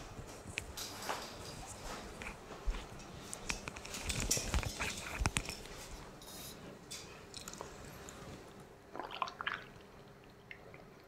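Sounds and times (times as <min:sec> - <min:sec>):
rustling handling noise: 0:00.0 - 0:08.6.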